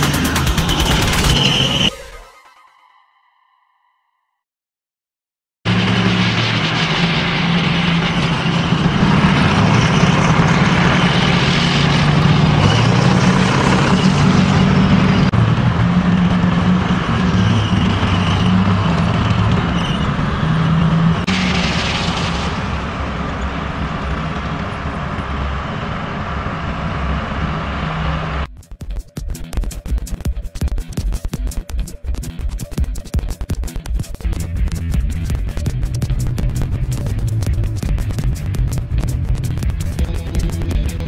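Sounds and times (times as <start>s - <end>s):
diesel engine droning: 0.0s - 2.0s, 5.7s - 28.5s, 34.2s - 41.0s
rushing noise of moving vehicle: 0.0s - 2.1s, 5.7s - 28.5s, 32.0s - 41.0s.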